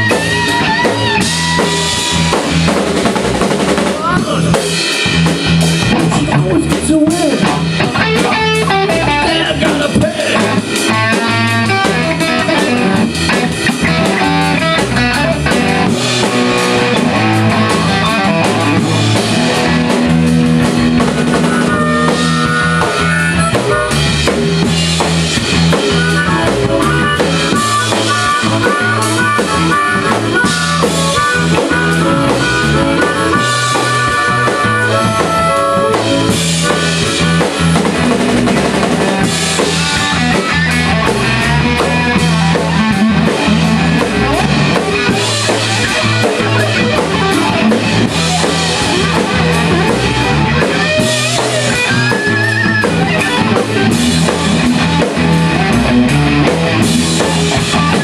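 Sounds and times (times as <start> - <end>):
drum kit beat: 0.0 - 58.0
electric bass: 0.0 - 58.0
electric guitar: 0.0 - 58.0.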